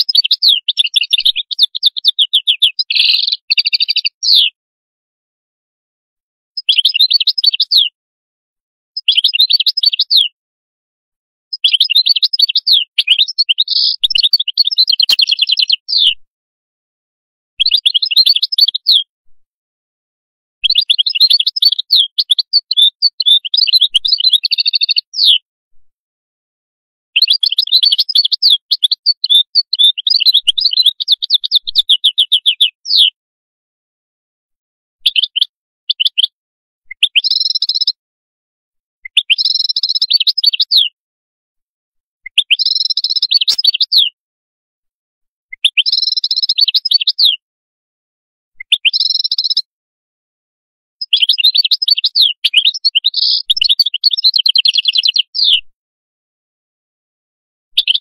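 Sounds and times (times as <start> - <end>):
goldfinch twittering song: 0.0 - 4.6, 6.6 - 7.9, 9.0 - 10.4, 11.5 - 16.2, 17.6 - 19.1, 20.6 - 25.4, 27.2 - 33.2, 35.0 - 38.0, 39.1 - 41.0, 42.3 - 44.2, 45.6 - 47.4, 48.6 - 49.7, 51.0 - 55.6, 57.8 - 58.0.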